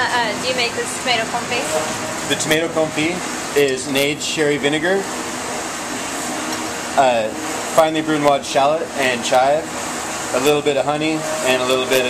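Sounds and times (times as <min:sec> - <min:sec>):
restaurant kitchen background hiss: 0:00.0 - 0:12.0.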